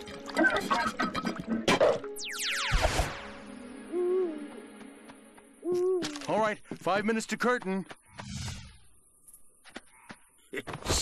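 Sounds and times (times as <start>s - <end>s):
cartoon owl hooting: 3.9s - 4.6s, 5.6s - 6.2s.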